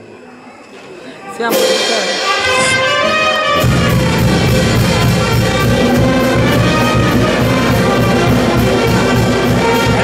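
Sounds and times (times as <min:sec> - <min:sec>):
brass band playing lively music: 0:01.4 - 0:10.0.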